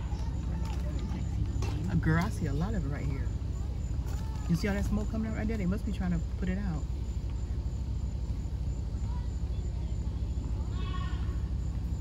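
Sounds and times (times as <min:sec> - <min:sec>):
low outdoor rumble: 0:00.0 - 0:12.0
distant voice-like call: 0:08.9 - 0:12.0.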